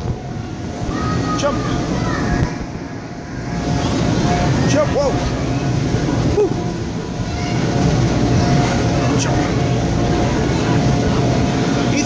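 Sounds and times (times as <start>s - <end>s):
air blowers running: 0.0s - 12.0s
children's voices: 0.9s - 2.7s.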